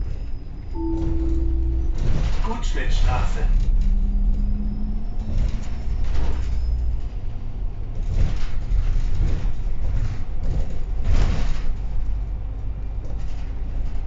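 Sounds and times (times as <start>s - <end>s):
bus engine and road rumble: 0.0s - 14.0s
low steady hum: 0.7s - 7.4s
bodywork rattles and knocks: 5.2s - 14.0s.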